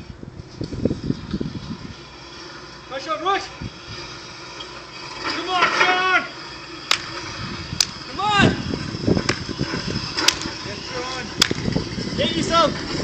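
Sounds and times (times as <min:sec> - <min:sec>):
sled grinding along asphalt: 0:00.0 - 0:13.0.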